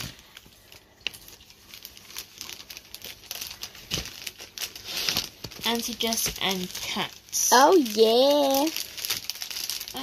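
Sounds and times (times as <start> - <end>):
soft rustling and crinkling: 0.0 - 10.0.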